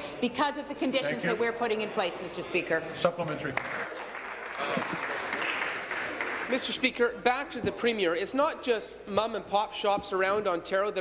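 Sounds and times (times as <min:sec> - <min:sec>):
people clapping: 0:03.2 - 0:07.1.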